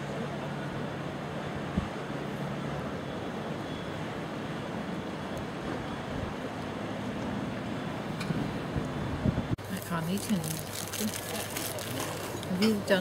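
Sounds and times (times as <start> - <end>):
wind: 0.0 - 13.0.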